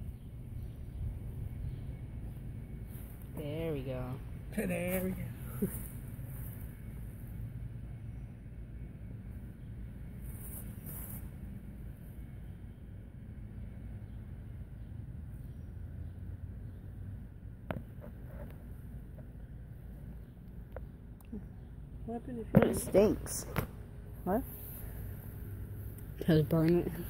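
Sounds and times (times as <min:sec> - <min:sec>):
wind rumble on microphone: 0:00.0 - 0:03.3.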